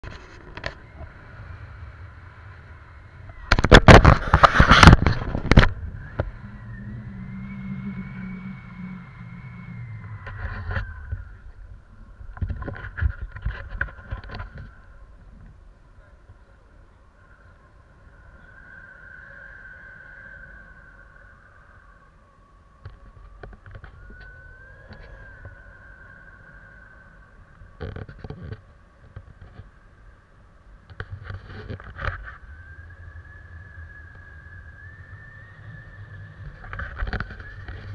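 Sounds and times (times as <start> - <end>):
wind buffeting microphone: 0.0 - 16.4
faint steady high tone: 5.8 - 12.3, 14.7 - 27.8.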